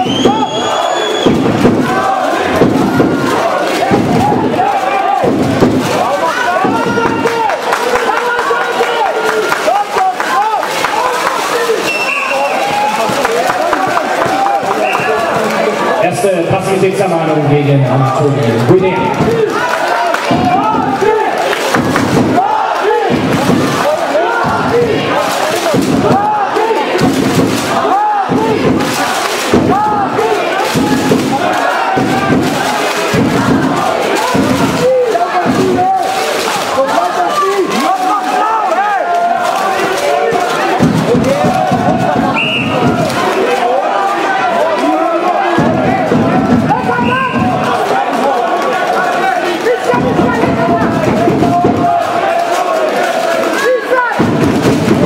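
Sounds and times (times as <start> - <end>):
crowd shouting and yelling: 0.0 - 55.0.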